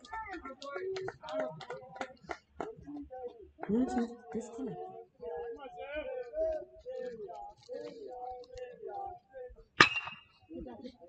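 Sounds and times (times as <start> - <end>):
metal bat hitting ball: 9.8 - 10.3.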